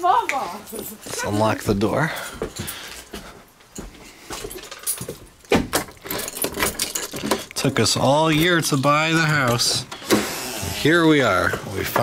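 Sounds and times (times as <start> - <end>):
keys rattling: 3.7 - 10.0.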